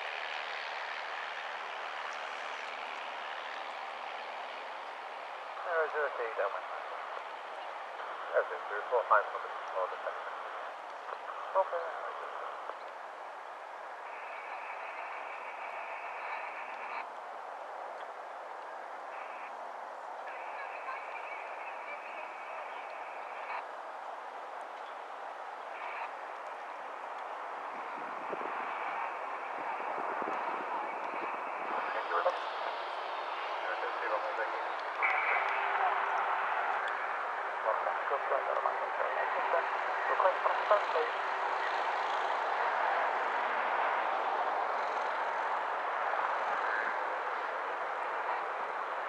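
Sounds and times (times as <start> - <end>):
radio transmissions: 0.0 - 17.1, 17.9 - 23.8, 24.6 - 49.0
radio static hiss: 0.0 - 17.2, 17.8 - 49.0
distant light aircraft taking off: 0.0 - 49.0.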